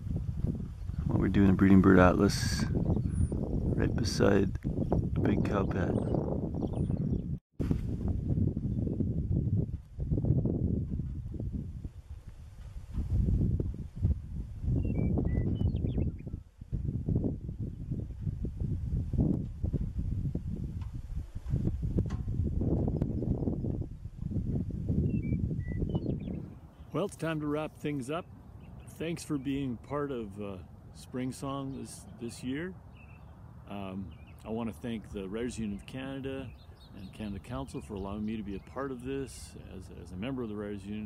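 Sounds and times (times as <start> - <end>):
wind buffeting microphone: 0.0 - 41.0
bird chirping: 4.7 - 7.4, 14.7 - 16.5, 25.0 - 29.8, 30.6 - 40.2.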